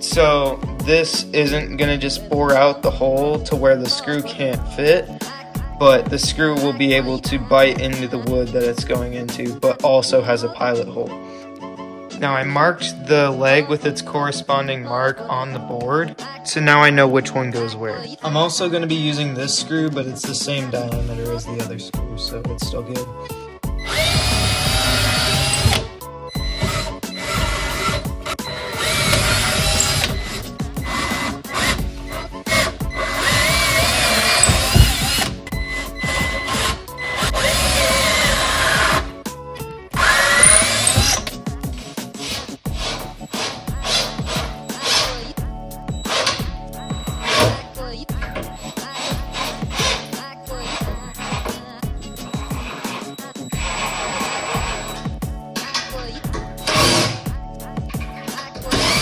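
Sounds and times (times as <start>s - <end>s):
background music with steady beat: 0.0s - 59.0s
cordless drill boring into wood: 23.8s - 39.0s, 40.0s - 41.3s, 42.8s - 45.2s, 46.1s - 47.6s, 48.6s - 51.5s, 52.3s - 55.1s, 58.7s - 59.0s.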